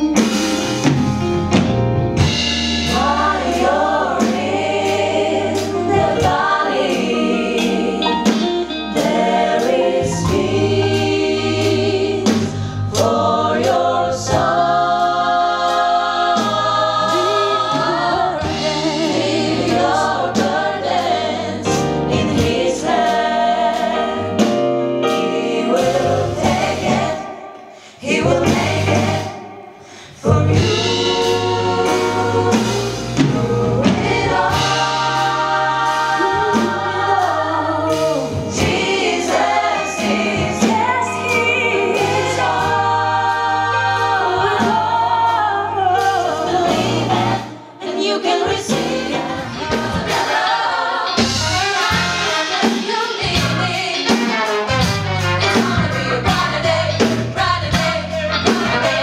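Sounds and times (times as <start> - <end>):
band accompaniment: 0.0 - 59.0
gospel choir singing: 0.0 - 59.0.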